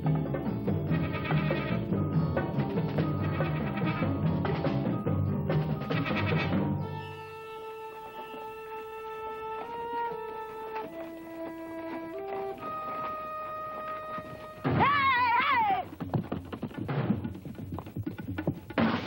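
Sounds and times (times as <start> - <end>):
drum-like thuds: 0.0 - 6.9, 10.7 - 19.0
film score with long held notes: 0.0 - 15.4
horse whinnying: 0.8 - 2.0, 3.0 - 4.3, 5.8 - 15.9.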